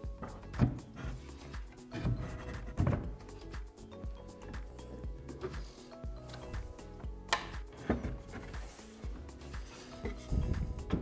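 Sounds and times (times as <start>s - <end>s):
background music: 0.0s - 11.0s
objects knocking on wooden workbench: 2.0s - 3.2s.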